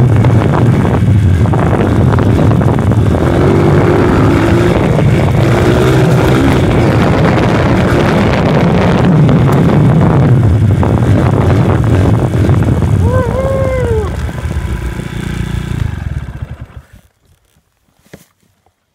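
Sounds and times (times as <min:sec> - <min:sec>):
wind on microphone: 0:00.0 - 0:16.8
dirt bike engine running: 0:00.0 - 0:17.7.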